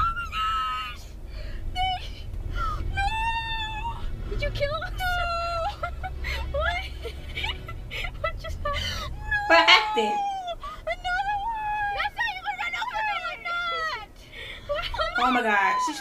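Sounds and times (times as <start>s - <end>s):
car rumble: 0.0s - 16.0s
women laughing and squealing: 2.6s - 16.0s.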